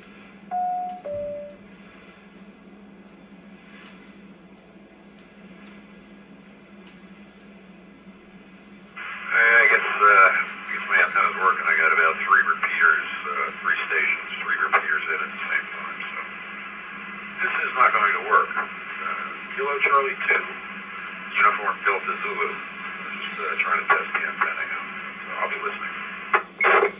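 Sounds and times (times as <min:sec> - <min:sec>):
radio open-channel hiss: 0:08.9 - 0:26.9
voice over two-way radio: 0:09.0 - 0:16.3, 0:17.4 - 0:20.6, 0:21.3 - 0:26.9.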